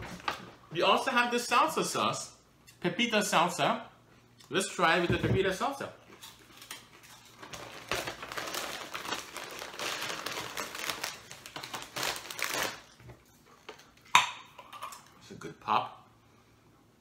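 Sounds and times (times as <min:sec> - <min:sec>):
chip bag crinkling: 0:06.2 - 0:13.1.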